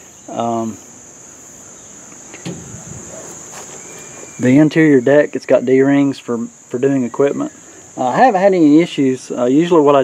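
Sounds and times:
insects chirring: 0.0 - 10.0
soft thump: 2.4 - 3.1.

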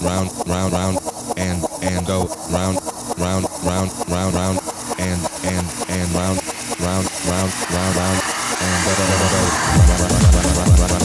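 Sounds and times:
pulsing bass notes: 0.0 - 11.0
stuttering chopped vocal sample: 0.0 - 11.0
techno music: 0.0 - 11.0.

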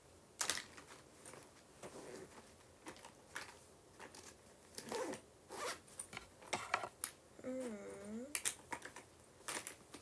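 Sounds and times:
zipper pulled: 4.8 - 5.8.

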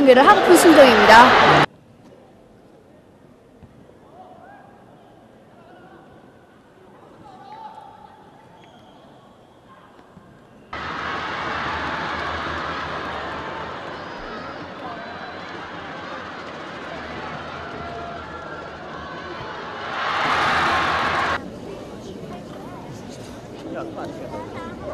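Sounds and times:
stadium crowd cheering: 0.0 - 1.7, 10.8 - 21.4.

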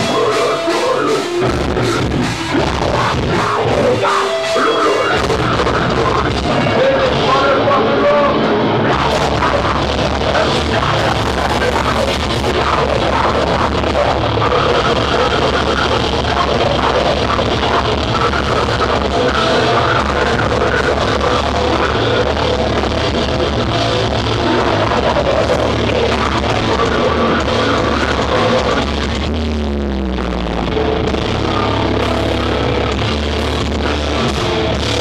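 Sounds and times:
metal band playing live: 0.0 - 35.0.

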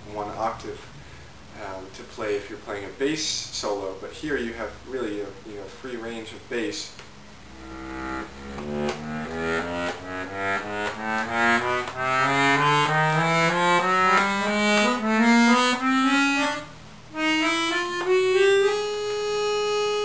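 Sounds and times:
accordion bass notes rising: 7.3 - 20.0.

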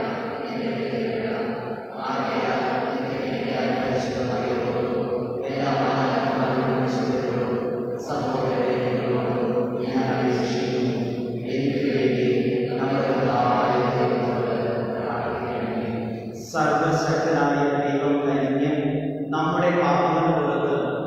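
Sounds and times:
man chanting a prayer: 0.0 - 21.0.

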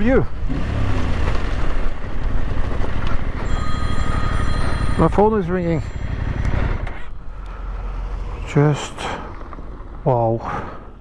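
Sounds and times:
motorcycle engine running: 0.0 - 10.2
wind and tyre noise: 0.0 - 11.0.

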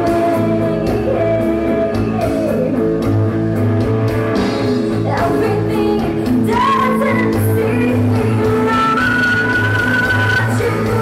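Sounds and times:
woman singing lead vocal: 0.0 - 2.8, 5.0 - 11.0
live rock band playing: 0.0 - 11.0.

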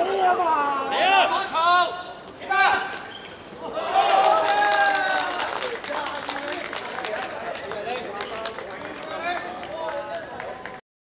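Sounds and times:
men shouting: 0.0 - 10.2
high-pitched insect chorus: 0.0 - 10.8.

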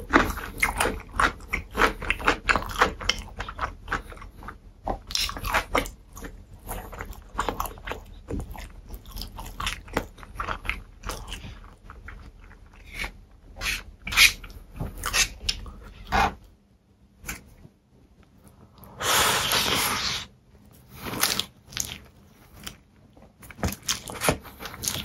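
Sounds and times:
chewing pickle crunches: 0.0 - 13.2.

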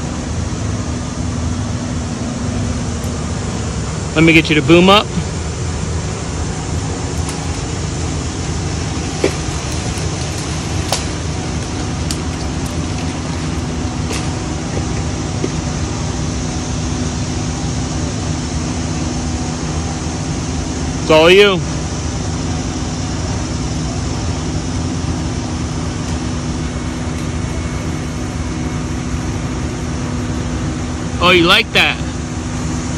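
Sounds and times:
crane engine running: 0.0 - 32.9.

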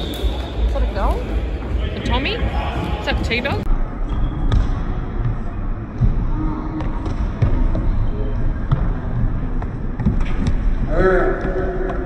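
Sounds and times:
ball kicked and bouncing on wooden court: 2.8 - 8.0, 8.6 - 10.8.

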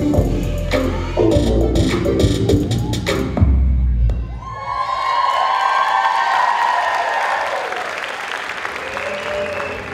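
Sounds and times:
audience applauding: 4.9 - 9.9.

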